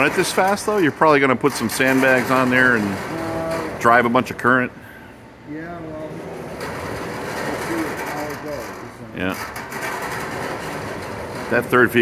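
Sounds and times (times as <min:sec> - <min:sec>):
conveyor carriers rattling on metal rails: 0:00.0 - 0:04.8, 0:05.4 - 0:12.0.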